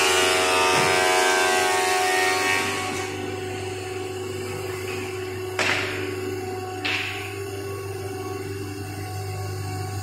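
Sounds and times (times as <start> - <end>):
woodworking machine whine: 0.0 - 10.0.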